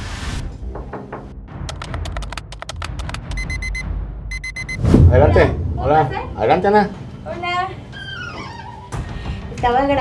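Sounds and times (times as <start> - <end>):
fast sharp clicks: 1.6 - 3.6
high electronic beeps: 3.3 - 4.9.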